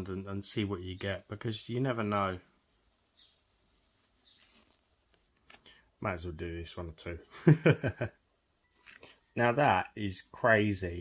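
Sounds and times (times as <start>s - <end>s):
sponge applicator rubbing: 0.0s - 9.6s.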